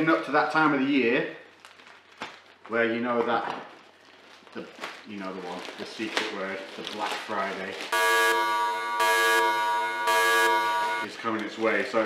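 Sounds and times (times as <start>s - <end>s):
buzzer sound effect: 8.0s - 11.1s.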